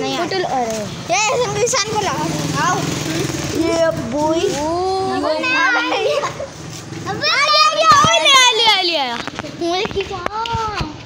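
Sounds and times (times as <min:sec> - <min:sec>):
children talking and calling out: 0:00.0 - 0:11.0.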